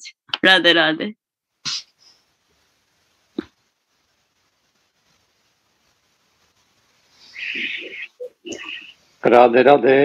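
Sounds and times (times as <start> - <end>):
faint line hiss: 1.5 - 10.0
person speaking: 7.3 - 10.0.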